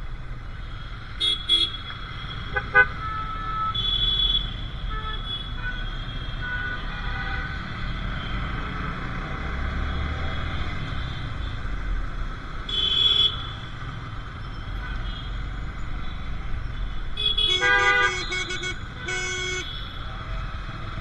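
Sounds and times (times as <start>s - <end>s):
vehicle horns honking: 1.2s - 7.5s, 17.2s - 19.9s.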